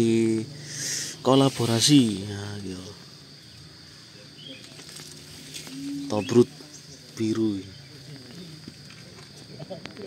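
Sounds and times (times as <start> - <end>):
high-pitched insect drone: 0.0 - 10.0
low vocal hum: 5.2 - 8.8.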